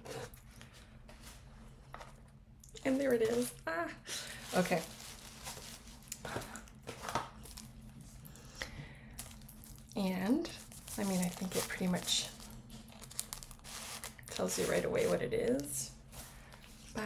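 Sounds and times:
gift wrapping paper crinkling: 4.3s - 6.3s, 9.2s - 14.8s.

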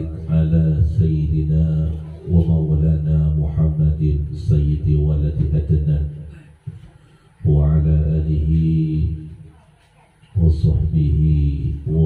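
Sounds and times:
man chanting through microphone: 0.0s - 9.6s, 10.3s - 12.0s.

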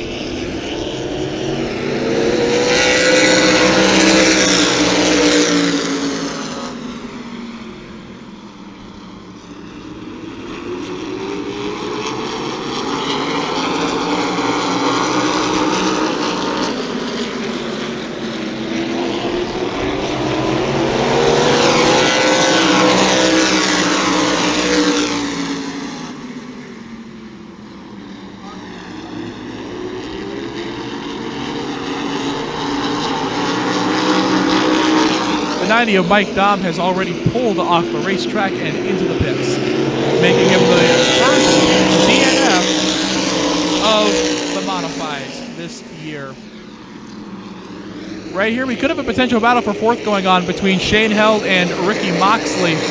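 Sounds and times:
race car engines passing: 0.0s - 52.9s.

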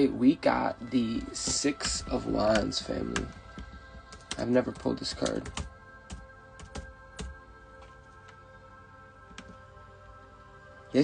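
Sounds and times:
background music of held tones: 0.0s - 11.0s.

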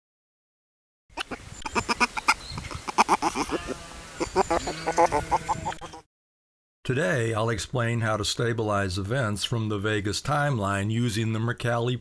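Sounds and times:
chorus of animal calls: 1.2s - 6.0s.

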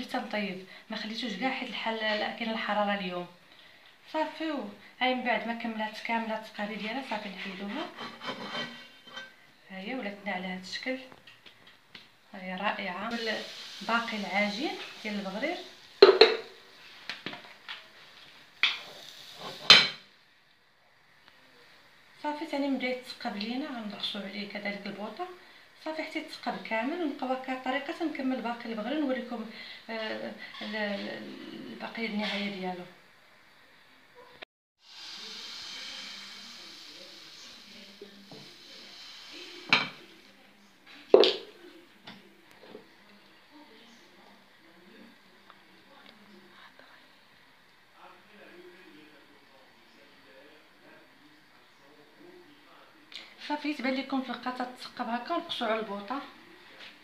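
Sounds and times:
batter hissing in a hot pan: 13.0s - 20.2s, 34.8s - 40.6s
kitchenware knocking and clattering: 16.0s - 16.5s.

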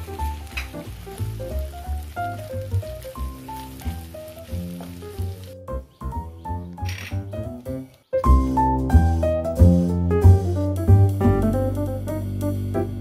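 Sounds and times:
food sizzling in hot oil: 0.0s - 5.7s
background music with bass beat: 8.3s - 13.0s.

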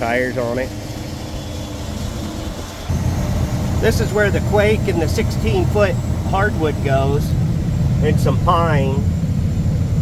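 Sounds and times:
diesel truck engine idling: 0.0s - 10.0s.

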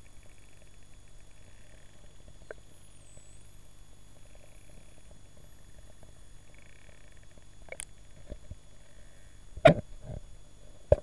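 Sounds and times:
faint buzzing pulse: 0.0s - 11.0s.

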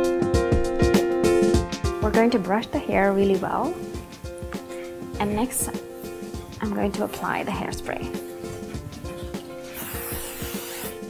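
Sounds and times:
background music with steady beat: 0.0s - 11.0s
aerosol hairspray hissing: 3.1s - 11.0s.

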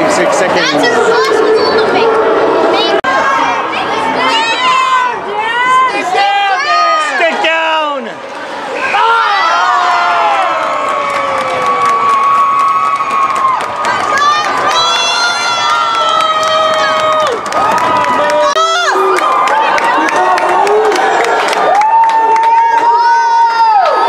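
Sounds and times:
crowd cheering and screaming: 0.0s - 24.0s.

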